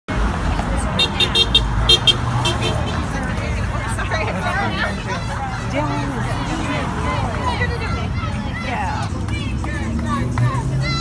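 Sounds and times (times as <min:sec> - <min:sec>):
car passing with rumble: 0:00.1 - 0:11.0
marchers chattering: 0:00.1 - 0:11.0.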